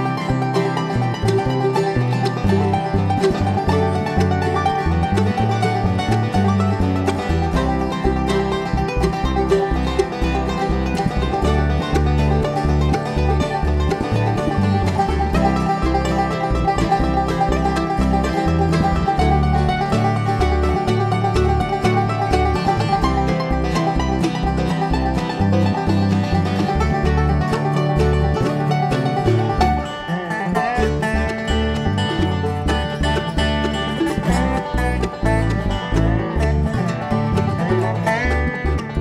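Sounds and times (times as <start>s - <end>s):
acoustic guitar: 0.0s - 39.0s
mandolin: 0.0s - 39.0s
rapid banjo picking: 0.0s - 39.0s
upright bass notes: 0.0s - 39.0s.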